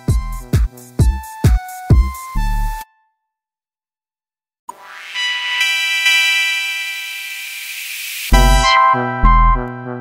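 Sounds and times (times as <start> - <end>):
synthesized held chord: 4.7 - 10.0
bright airy hiss: 6.2 - 8.3.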